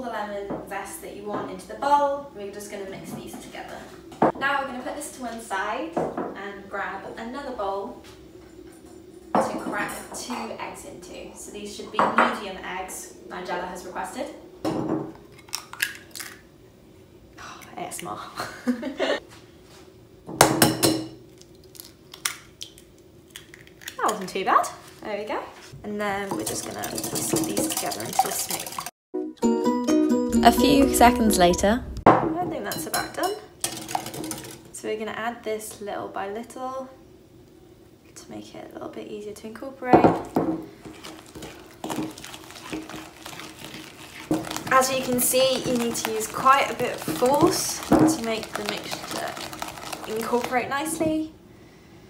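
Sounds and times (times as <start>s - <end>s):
egg cracking on glass bowl: 15.3s - 16.5s, 20.6s - 24.3s, 33.6s - 34.7s, 41.0s - 50.9s
spoon stirring wet batter: 26.1s - 28.9s, 40.8s - 51.2s.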